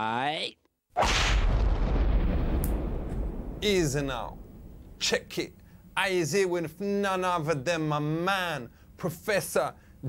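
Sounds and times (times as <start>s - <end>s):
boom with rumbling tail: 1.0s - 5.0s.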